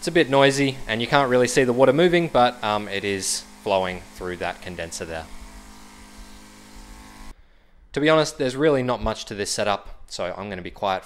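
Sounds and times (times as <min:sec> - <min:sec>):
water pump humming: 0:00.0 - 0:07.3.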